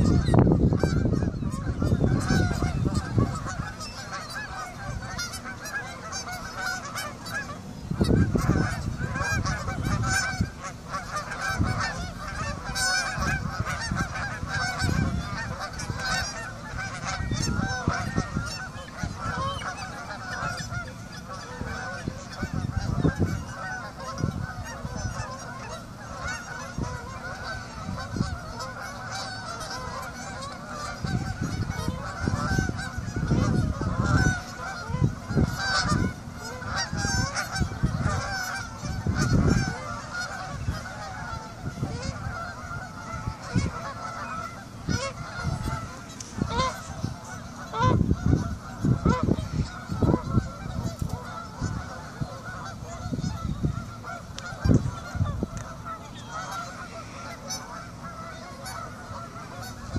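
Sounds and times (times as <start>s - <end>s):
geese honking: 0.0s - 59.9s.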